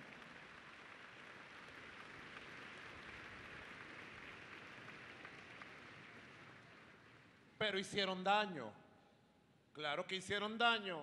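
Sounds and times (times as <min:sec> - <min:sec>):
faint audience applause: 0:00.0 - 0:07.6.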